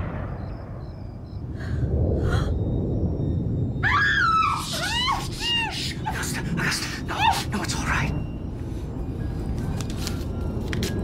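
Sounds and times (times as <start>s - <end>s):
low rumbling background: 0.0s - 11.0s.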